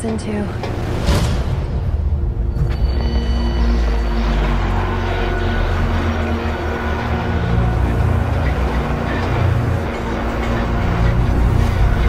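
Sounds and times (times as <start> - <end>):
dark droning tones: 0.0 - 12.0.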